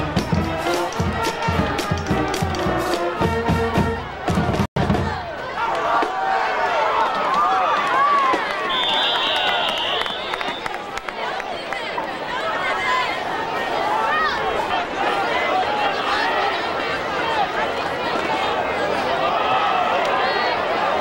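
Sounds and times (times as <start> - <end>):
band drum beat with horns: 0.0 - 5.3
crowd voices and cheering: 0.0 - 21.0
sharp whistle blast: 8.6 - 10.8.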